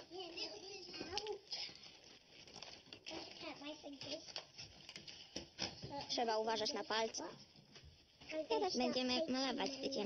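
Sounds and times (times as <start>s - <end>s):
child's voice: 0.0s - 1.7s, 3.1s - 4.4s, 8.3s - 10.0s
card rustling and crinkling: 0.1s - 8.4s.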